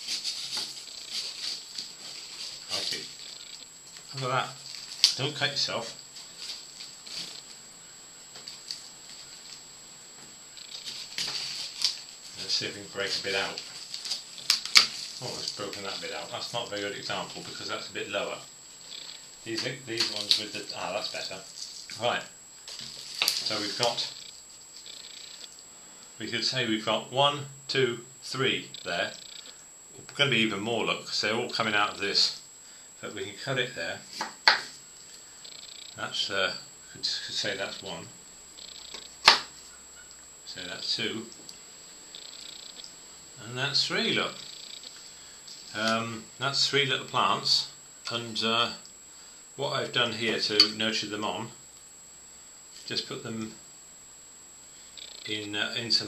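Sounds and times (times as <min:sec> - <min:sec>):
crackling and scraping of soil: 0:00.0 - 0:07.6, 0:10.6 - 0:25.6
faint small ticks: 0:00.2 - 0:05.2, 0:10.2 - 0:12.2, 0:13.5 - 0:15.6, 0:18.8 - 0:20.4, 0:22.6 - 0:25.7, 0:28.7 - 0:30.1, 0:35.0 - 0:36.0, 0:38.5 - 0:40.3, 0:41.3 - 0:43.0, 0:44.4 - 0:45.6, 0:54.9 - 0:55.3.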